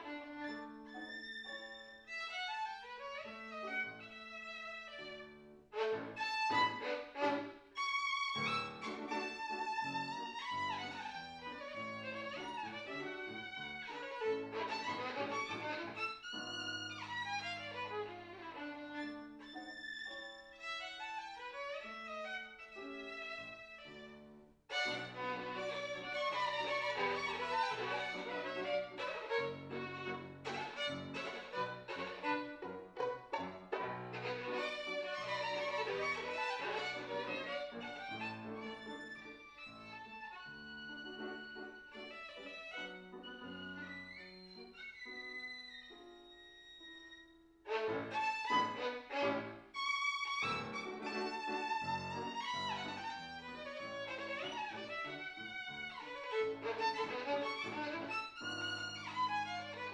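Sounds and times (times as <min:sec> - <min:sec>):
piano accompaniment: 0:00.0 - 0:59.9
solo violin melody: 0:00.0 - 0:59.9.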